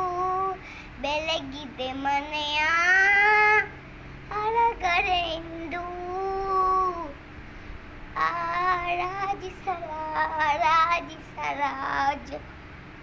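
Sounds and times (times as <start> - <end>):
girl singing: 0.0 - 3.7, 4.3 - 7.2, 8.2 - 12.4.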